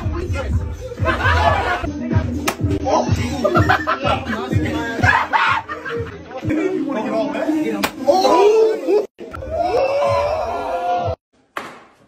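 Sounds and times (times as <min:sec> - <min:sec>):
young men shouting and whooping: 0:08.0 - 0:11.2.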